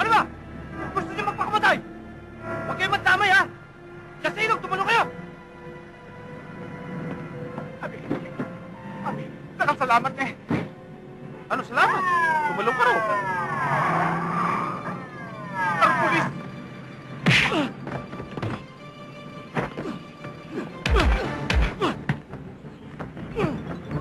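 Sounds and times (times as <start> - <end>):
action film music: 0.0 - 24.0.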